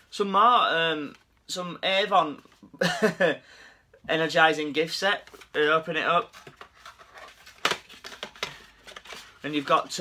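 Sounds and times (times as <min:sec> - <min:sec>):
plastic bottles clicking and knocking: 0:07.5 - 0:09.2.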